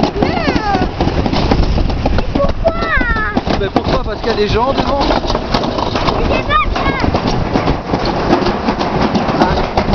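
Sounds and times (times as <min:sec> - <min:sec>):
sled rattling clicks in metal channel: 0:00.0 - 0:09.9
sled rumbling down metal track: 0:00.0 - 0:09.9.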